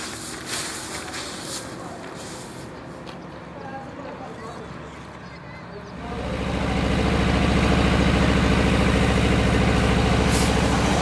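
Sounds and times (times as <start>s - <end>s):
outdoor background noise: 0.0s - 11.0s
distant indistinct voices: 0.5s - 11.0s.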